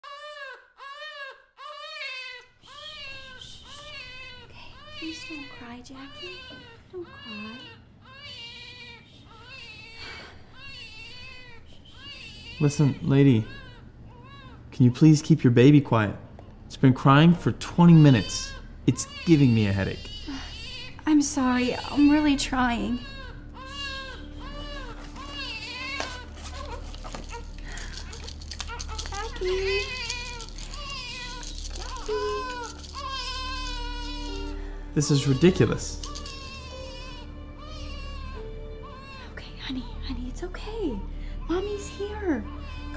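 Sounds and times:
baby crying: 0:00.0 - 0:14.7, 0:17.9 - 0:40.0, 0:40.9 - 0:42.9.

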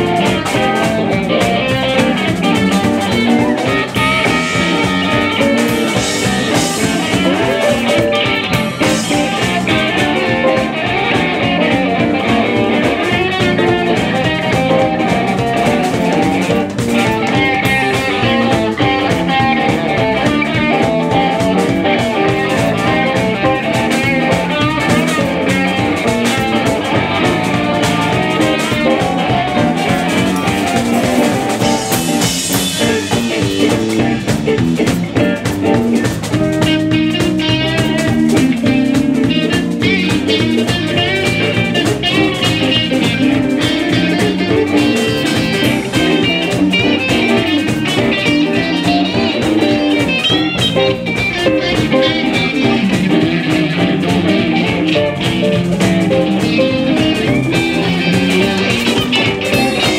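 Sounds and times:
drum kit: 0:00.0 - 0:59.9
electric guitars: 0:00.0 - 0:59.9.

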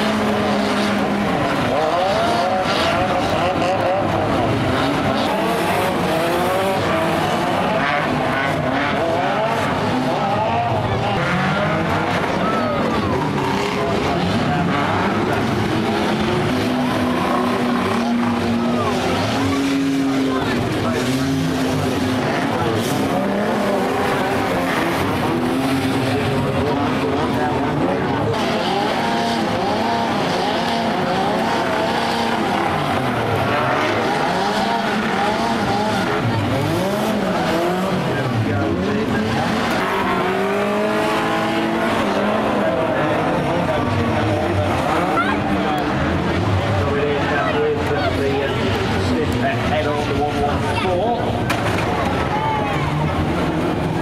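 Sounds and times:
racing car engines revving: 0:00.0 - 0:54.0.

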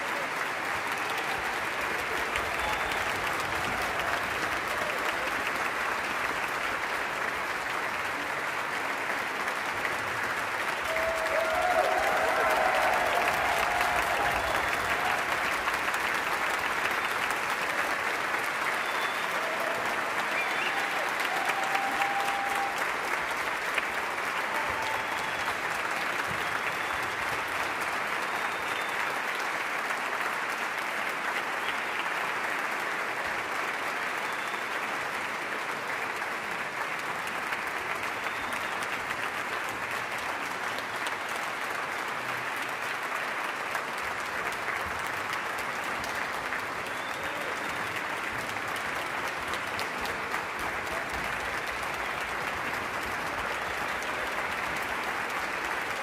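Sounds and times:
audience applause: 0:00.0 - 0:56.0.

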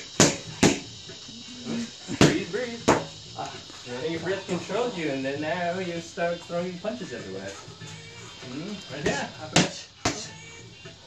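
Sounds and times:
boxing gloves smacking mitts: 0:00.2 - 0:00.9.

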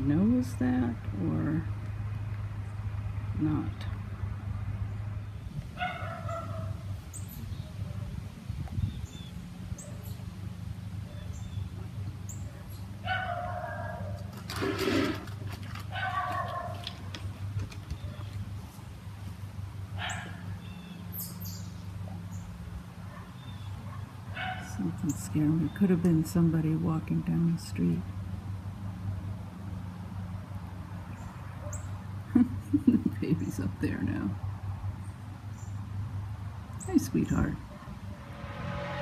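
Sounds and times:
dogs barking: 0:05.8 - 0:06.8, 0:12.4 - 0:14.3, 0:15.9 - 0:17.0, 0:20.0 - 0:20.6, 0:23.0 - 0:24.8, 0:31.5 - 0:32.0.

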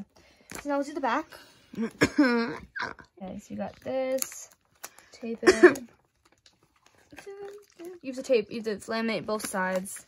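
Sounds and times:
paper and tape ticking: 0:03.2 - 0:10.0.

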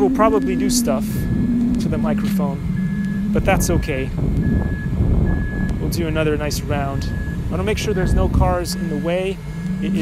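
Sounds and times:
vehicle reversing alarm beeping: 0:00.0 - 0:10.0
wind buffeting microphone: 0:00.0 - 0:10.0.

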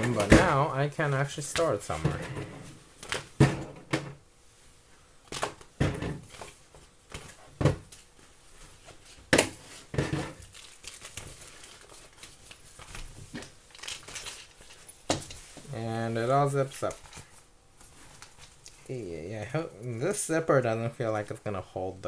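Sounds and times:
plastic bag crinkling: 0:10.3 - 0:15.0.

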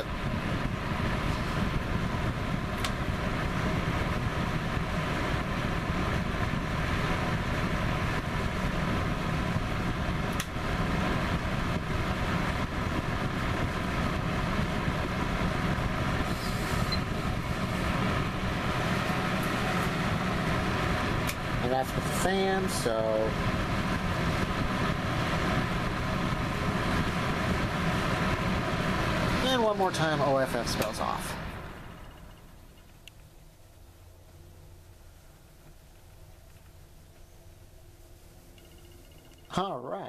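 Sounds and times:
heater click: 0:00.0 - 0:34.4, 0:35.6 - 0:37.7, 0:38.4 - 0:39.7
low motor hum: 0:00.0 - 0:39.5
heater fan air rushing: 0:00.0 - 0:40.0.

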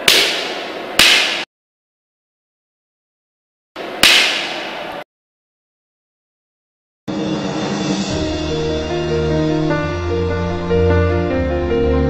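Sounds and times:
cane strike smack: 0:00.0 - 0:01.5, 0:04.0 - 0:04.8.

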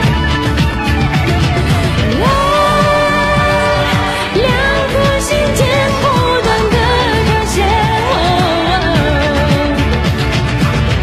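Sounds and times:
backing music with steady beat: 0:00.0 - 0:11.0
woman singing pop song: 0:01.7 - 0:10.4.

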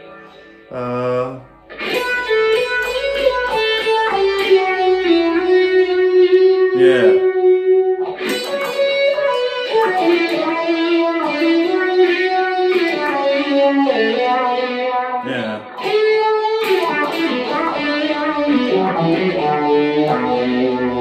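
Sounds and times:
electric guitar with phaser effect: 0:00.0 - 0:21.0.

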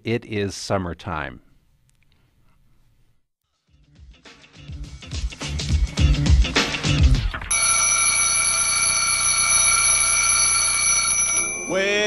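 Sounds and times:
music with a beat: 0:03.8 - 0:07.4
alarm clock ringing: 0:07.5 - 0:12.0.

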